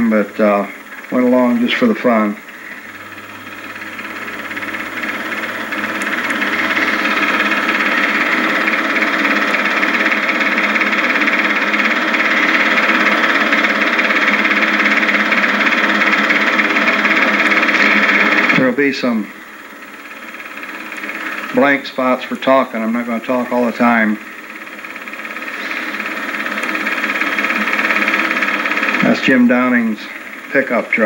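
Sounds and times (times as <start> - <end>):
mechanical whir with hiss: 0.0 - 31.0.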